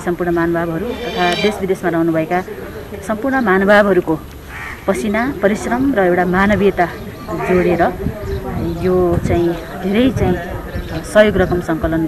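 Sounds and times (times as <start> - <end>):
woman speaking: 0.0 - 2.4, 4.9 - 8.0.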